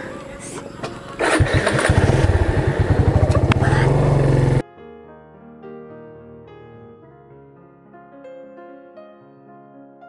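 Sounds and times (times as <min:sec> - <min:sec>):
motorcycle engine running: 0:01.2 - 0:04.6.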